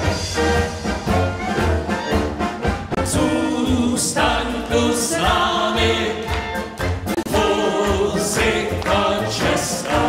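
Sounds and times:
brass band playing: 0:00.0 - 0:10.0.

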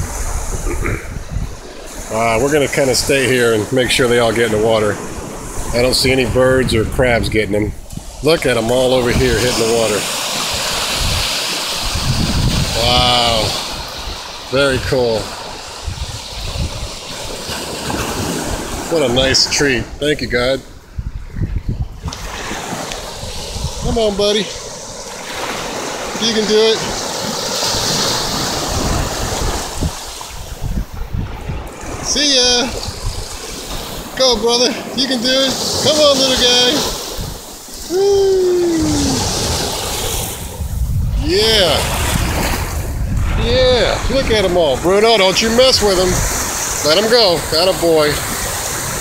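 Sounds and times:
ocean surf washing onto beach: 0:00.0 - 0:49.0
wind rumbling on microphone: 0:00.0 - 0:49.0.

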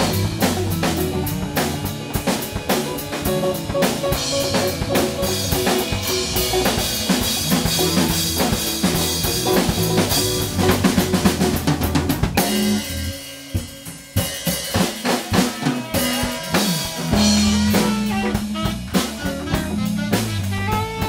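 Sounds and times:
saxophone: 0:00.0 - 0:11.2, 0:15.3 - 0:21.0
electric bass: 0:00.0 - 0:14.8, 0:15.4 - 0:21.0
drum kit: 0:00.0 - 0:21.0
electric guitar: 0:00.0 - 0:21.0.

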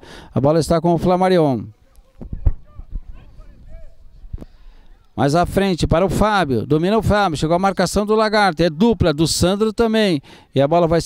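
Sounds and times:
distant shouts of players: 0:02.0 - 0:04.2.

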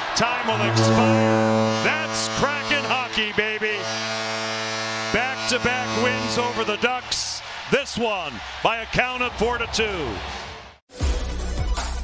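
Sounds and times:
person speaking: 0:00.4 - 0:03.2.

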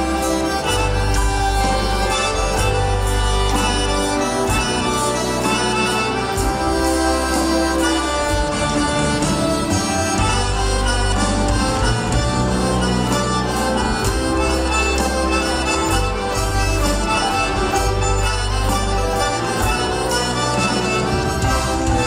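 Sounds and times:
accordion lead: 0:00.0 - 0:22.0
live band playing: 0:00.0 - 0:22.0.

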